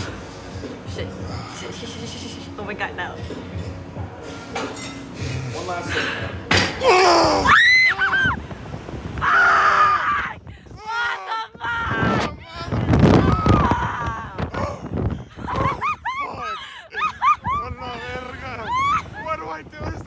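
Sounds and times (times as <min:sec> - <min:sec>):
people screaming: 0:06.8 - 0:08.4, 0:09.2 - 0:16.6, 0:18.6 - 0:19.2
breathless laughter and whoops: 0:14.5 - 0:17.6.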